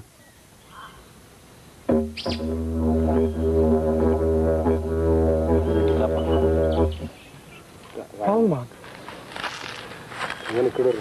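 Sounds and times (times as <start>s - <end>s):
didgeridoo drone: 1.9s - 7.2s.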